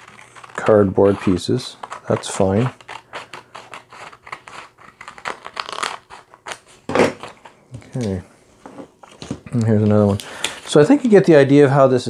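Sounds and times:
scissors cutting paper: 0.0 - 6.6
paper rustling: 0.0 - 8.2.

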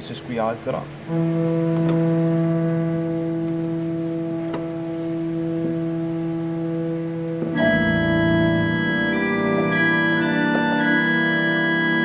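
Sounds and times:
pipe organ sustained note: 0.1 - 12.0.

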